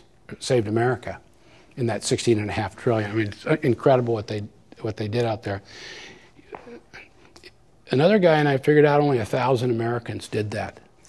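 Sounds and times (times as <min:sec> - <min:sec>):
breathy exhale: 0:05.7 - 0:06.4.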